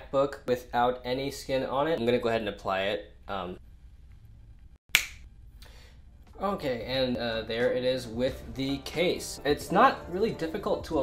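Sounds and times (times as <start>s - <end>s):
finger snap: 4.9s - 5.7s.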